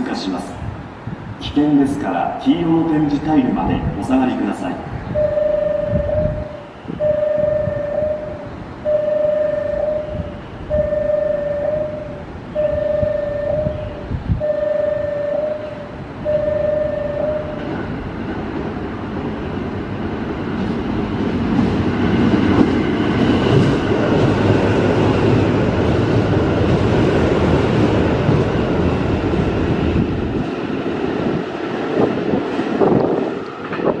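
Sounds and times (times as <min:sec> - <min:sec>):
express train passing: 0:00.0 - 0:34.0
platform warning beeps: 0:05.1 - 0:17.8.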